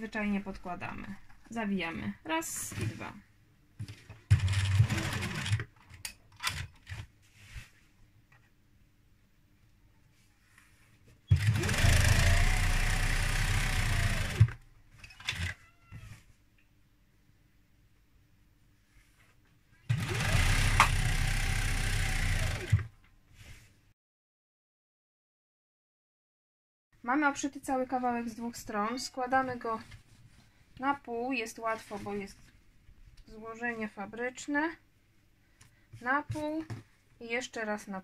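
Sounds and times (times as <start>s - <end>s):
sewing machine running: 4.3s - 5.6s, 11.3s - 14.6s, 19.9s - 22.9s.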